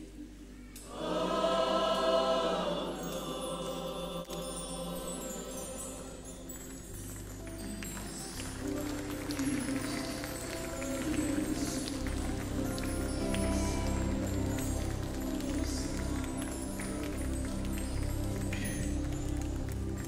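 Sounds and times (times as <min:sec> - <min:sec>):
instrumental worship music: 0:00.0 - 0:20.0.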